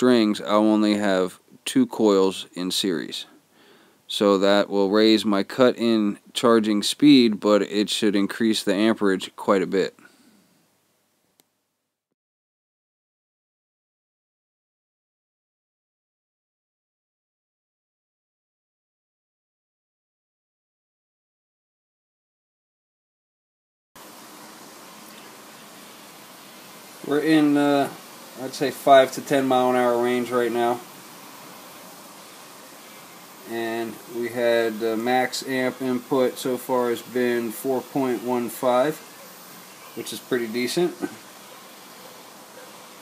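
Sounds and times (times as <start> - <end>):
steady background hiss: 0.0 - 11.8, 24.0 - 43.0.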